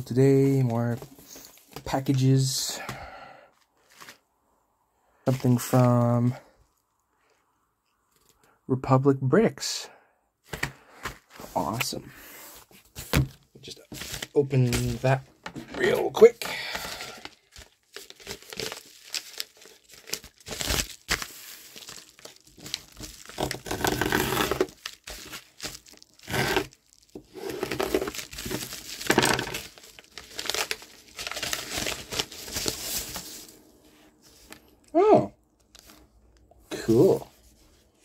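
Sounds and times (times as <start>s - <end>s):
packaging crinkling and tearing: 13.9s - 15.2s, 15.8s - 33.4s.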